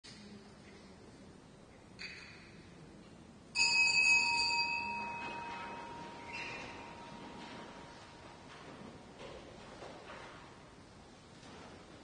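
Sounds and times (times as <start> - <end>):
small bell ringing: 3.6 - 7.9.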